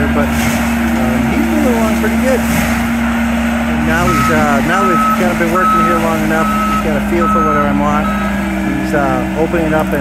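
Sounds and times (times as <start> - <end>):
forest mulcher engine hum: 0.0 - 10.0.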